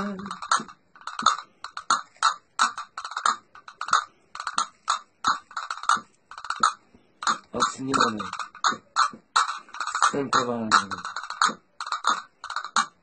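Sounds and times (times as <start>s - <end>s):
hand-held percussion clicks: 0.0s - 13.0s.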